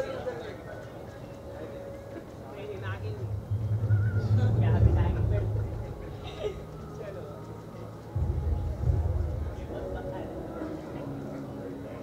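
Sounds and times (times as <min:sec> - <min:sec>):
background voices talking: 0:00.0 - 0:12.0
strong low rumble: 0:02.8 - 0:07.2, 0:08.1 - 0:11.4.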